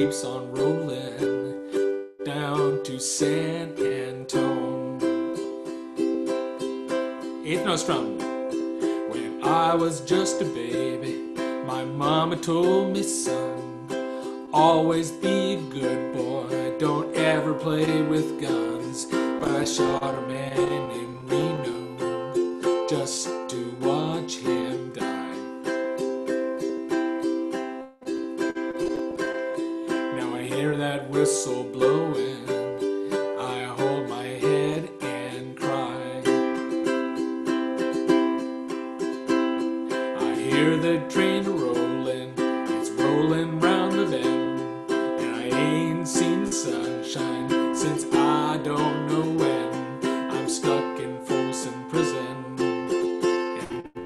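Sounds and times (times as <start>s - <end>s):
man singing: 0.0s - 26.0s, 28.4s - 38.5s, 39.6s - 54.0s
ukulele strumming: 0.0s - 54.0s.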